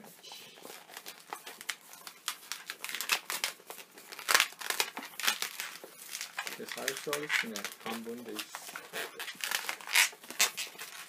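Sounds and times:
balloons rubbing and squeaking: 0.0s - 11.0s.

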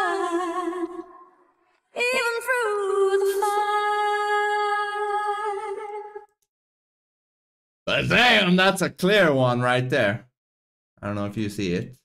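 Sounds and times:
woman singing with auto-tune: 0.0s - 1.3s, 2.0s - 6.3s.

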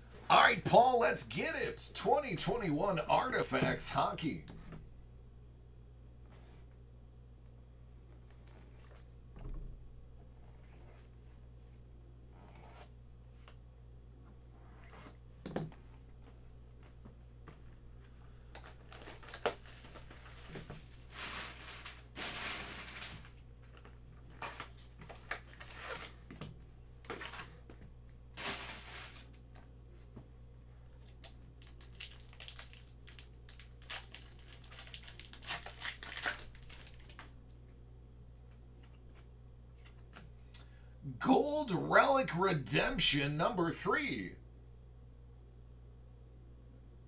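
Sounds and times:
foil packs crinkling and tearing: 18.6s - 23.4s, 24.4s - 26.3s, 28.4s - 29.4s, 31.0s - 37.3s.

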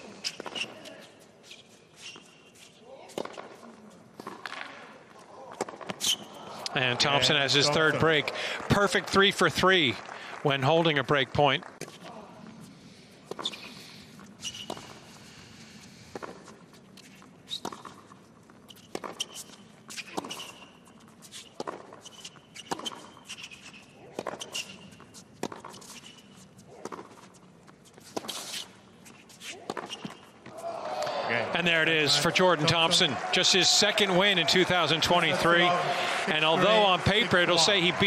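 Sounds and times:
sneaker squeaks: 0.0s - 4.3s, 5.5s - 6.6s, 13.3s - 15.2s, 16.7s - 30.7s
racket hitting ball: 3.1s - 3.6s.

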